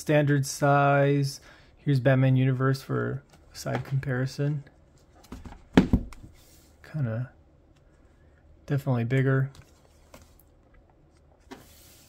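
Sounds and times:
book knocking on table: 5.3 - 6.3
books tapping on wooden table: 5.3 - 6.3
book sliding across table: 6.3 - 6.8, 11.4 - 12.0.

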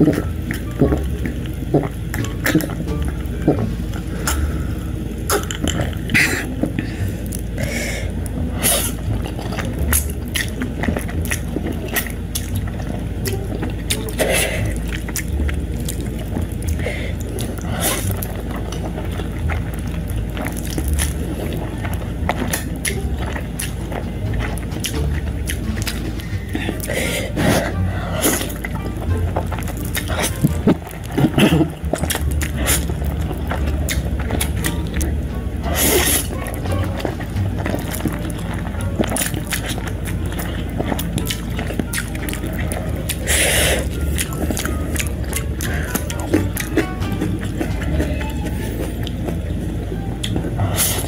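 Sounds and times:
chewing with wet mouth clicks: 0.0 - 4.7, 5.3 - 51.0
person swallowing a drink: 0.0 - 4.7, 5.3 - 7.9, 29.8 - 35.1
steady low hum: 0.0 - 51.0
slurping noodles: 5.3 - 13.1, 13.8 - 34.7, 35.6 - 49.3, 50.6 - 51.0.

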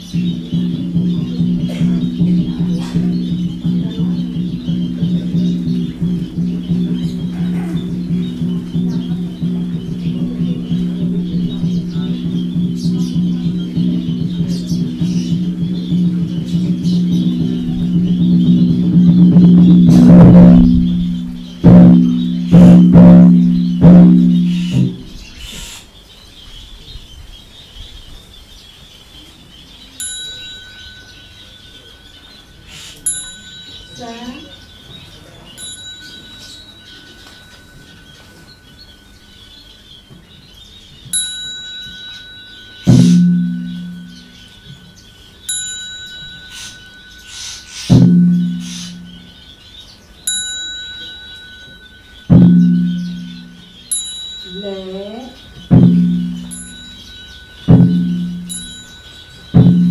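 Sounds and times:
large low temple bell ringing: 0.0 - 25.4, 29.9 - 59.9
faint bird chirping: 0.0 - 59.9
small high-pitched bell struck: 30.0 - 39.7, 41.0 - 49.4, 50.2 - 59.9.

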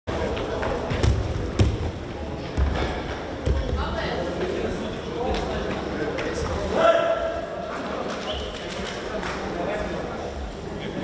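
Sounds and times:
chatter of voices in a hall: 0.1 - 11.0.

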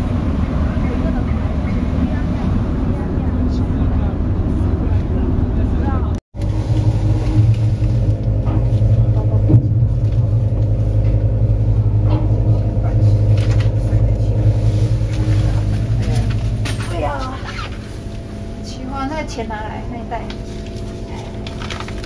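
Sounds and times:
ship machinery humming: 0.0 - 22.0.

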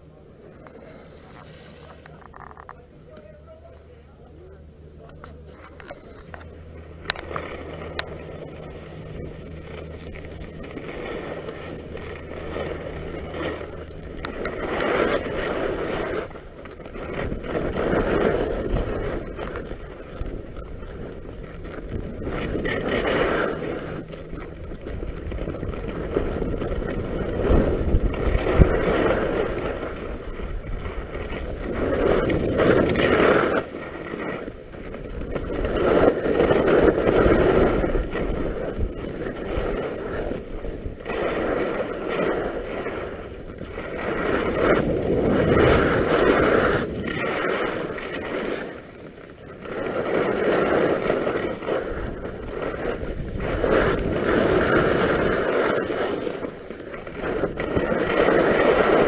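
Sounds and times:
skis scraping on snow: 0.0 - 4.6, 5.4 - 59.0.

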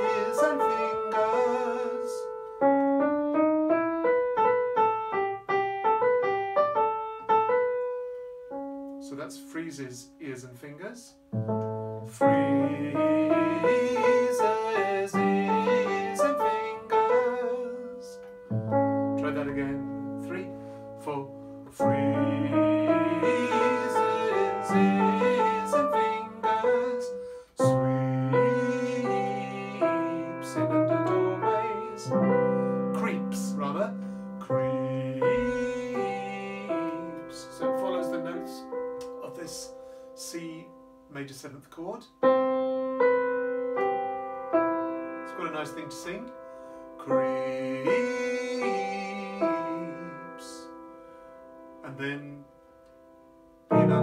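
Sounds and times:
keyboard playing piano sound: 0.0 - 54.0.

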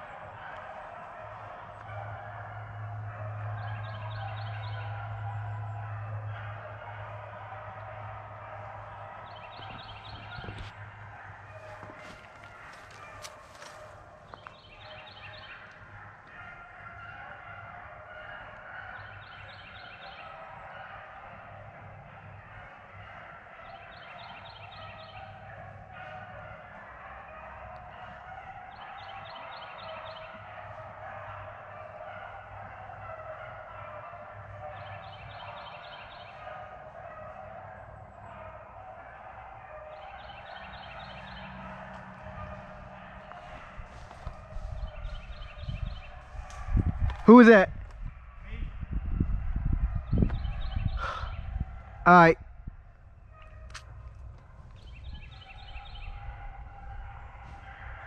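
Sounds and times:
beagles baying in distance: 0.0 - 58.0.

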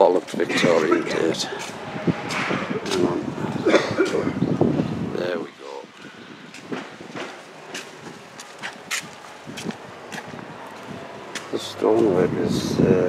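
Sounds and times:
outdoor street background: 0.0 - 13.0
voices: 0.0 - 13.0.

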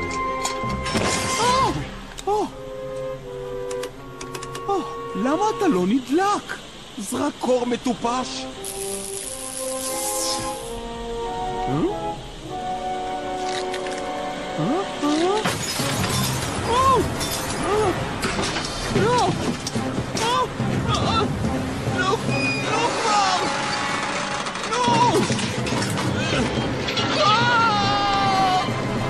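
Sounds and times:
soft held background music: 0.0 - 29.0
voiced exclamation: 14.6 - 15.4
glass breaking and tinkling: 15.4 - 16.6, 17.2 - 17.7
whistling tones: 22.3 - 22.9.

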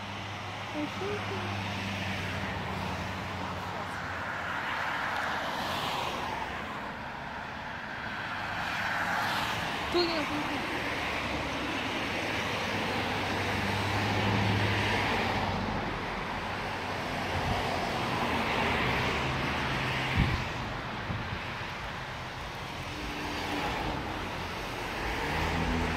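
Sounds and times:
highway traffic passing: 0.0 - 25.9.

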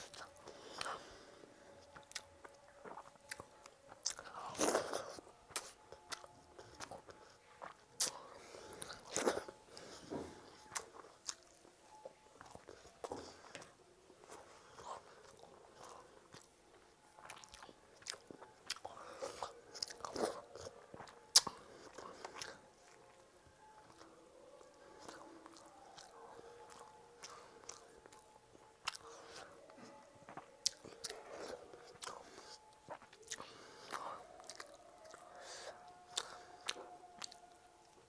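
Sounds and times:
chewing and mouth noise: 0.0 - 1.1, 1.8 - 38.0.

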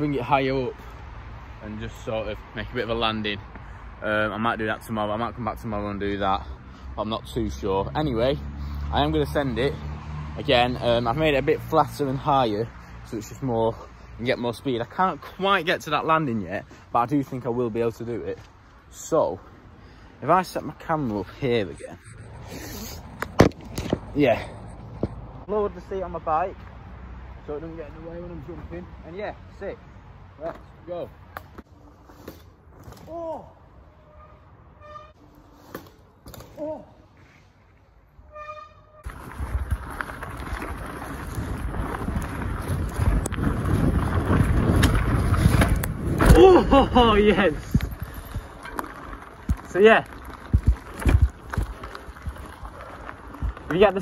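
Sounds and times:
bike rolling over dirt trail: 39.0 - 54.0.

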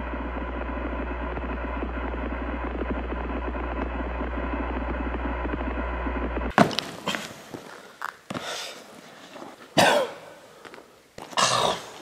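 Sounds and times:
person vocal outburst: 11.3 - 12.0.

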